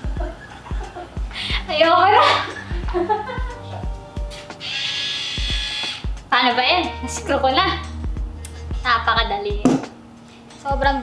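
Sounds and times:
background music: 0.0 - 11.0
electric screwdriver whine: 4.3 - 6.1.

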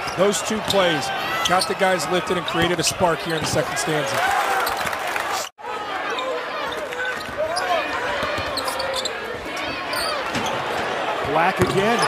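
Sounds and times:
arena crowd noise: 0.0 - 12.0
basketball bouncing: 11.6 - 11.8.

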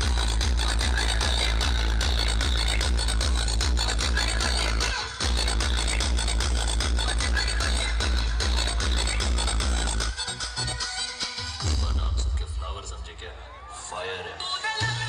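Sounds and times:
electronic dance music with heavy bass: 0.0 - 15.0.

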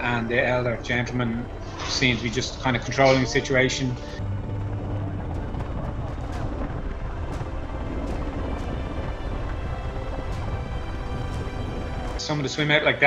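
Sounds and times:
boat engine rumble: 0.0 - 13.0
faint background music: 0.0 - 13.0.

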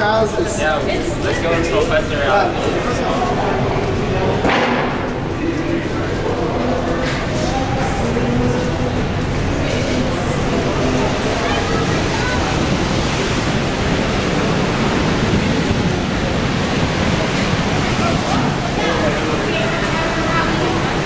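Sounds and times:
faint voices of people: 0.0 - 21.0
waterfall rushing: 5.2 - 21.0.

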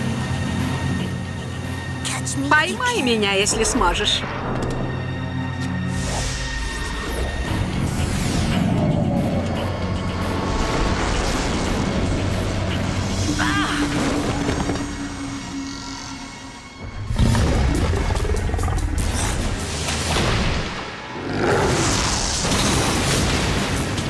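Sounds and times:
dramatic film score: 0.0 - 24.0.

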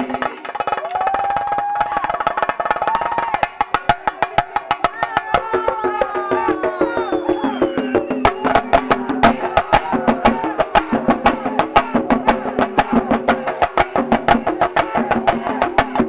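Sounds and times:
drums struck with sticks: 0.0 - 16.0.

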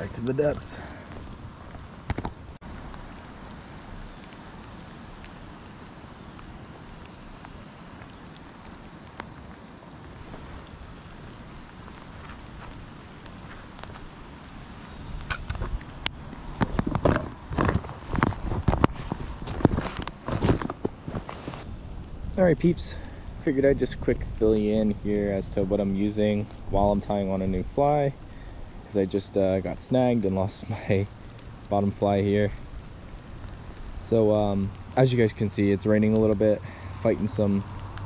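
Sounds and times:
creek running: 0.0 - 21.7
light rain: 0.0 - 38.0
fishing gear knocking and rustling: 15.2 - 21.6.

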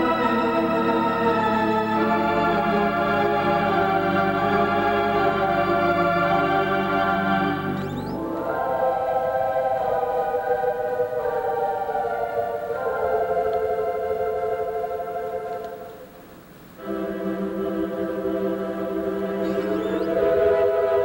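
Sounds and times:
pipe organ playing held chords: 0.0 - 16.2, 16.8 - 21.0.

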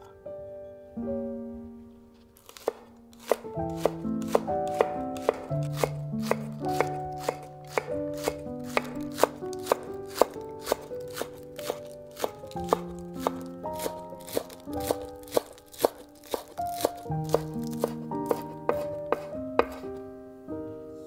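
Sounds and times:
background music with held notes: 0.0 - 21.0
knife chopping on wooden board: 2.4 - 19.9.

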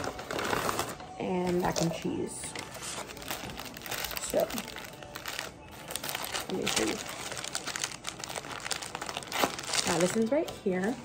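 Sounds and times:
plastic and paper crinkling: 0.0 - 11.0.

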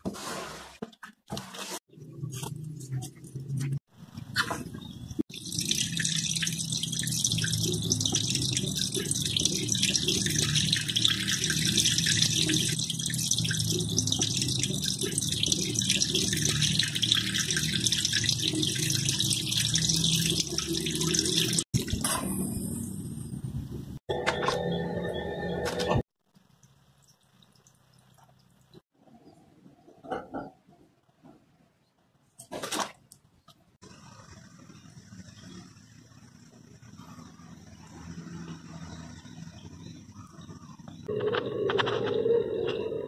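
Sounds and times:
water pouring into pond: 5.3 - 22.8.

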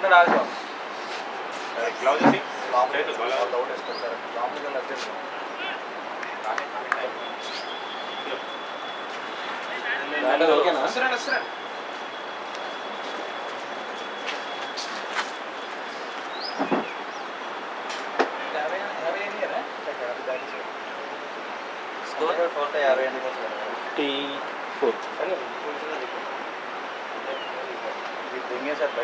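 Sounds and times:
distant voices calling: 0.0 - 19.0
steady background hiss: 0.0 - 29.0.

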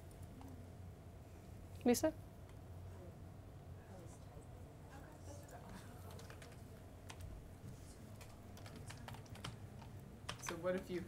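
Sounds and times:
faint keyboard and mouse clicking: 0.0 - 0.6, 5.4 - 7.3, 8.1 - 11.0.

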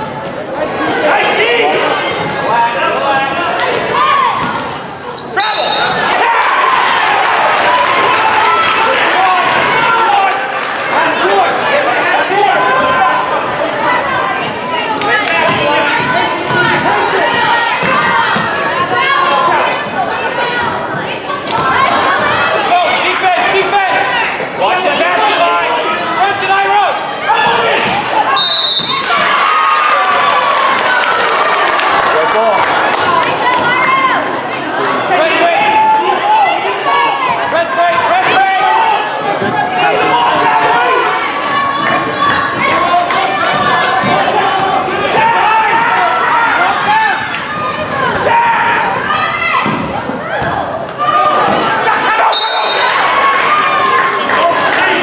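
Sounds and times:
shouting and chatter: 0.0 - 55.0
referee's whistle blasts: 5.2 - 6.0, 28.3 - 29.1, 52.3 - 53.1.

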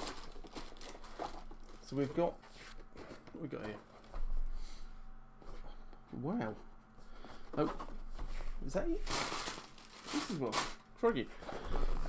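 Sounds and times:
plastic wrapping crinkling: 0.0 - 2.2, 8.9 - 10.9.

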